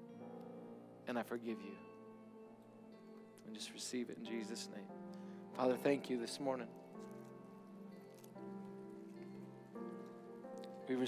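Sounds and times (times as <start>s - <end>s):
soft church band chords: 0.0s - 11.0s.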